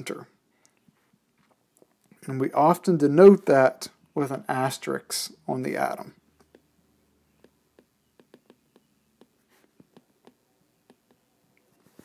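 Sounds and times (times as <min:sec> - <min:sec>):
stylus scratching on screen: 0:06.4 - 0:12.0
stylus tapping on tablet screen: 0:07.3 - 0:11.3.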